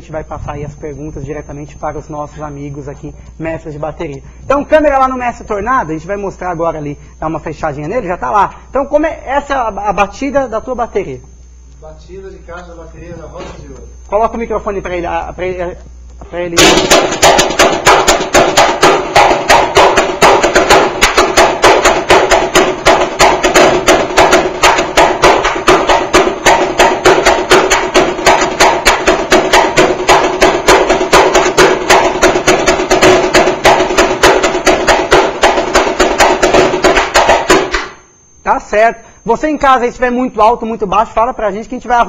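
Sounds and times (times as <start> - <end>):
snare drum played fast: 16.6 - 37.9.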